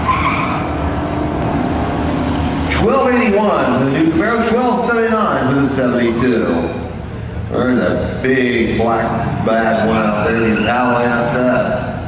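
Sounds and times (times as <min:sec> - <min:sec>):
tire squeal: 0:00.0 - 0:01.4, 0:09.7 - 0:11.6
race car engines running: 0:00.0 - 0:12.0.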